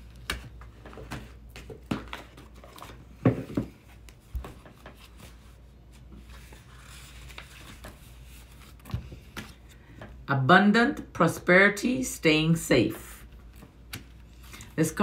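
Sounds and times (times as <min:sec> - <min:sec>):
paper rustling: 0:00.0 - 0:03.2, 0:03.8 - 0:09.8.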